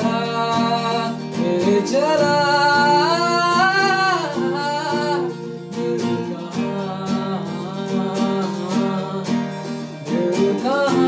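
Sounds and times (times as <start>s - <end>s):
man singing pop ballad: 0.0s - 11.0s
strummed acoustic guitar: 0.0s - 11.0s.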